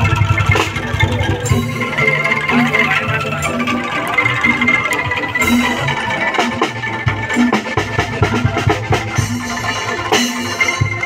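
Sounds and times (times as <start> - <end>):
bamboo slit drum ensemble: 0.0 - 11.0.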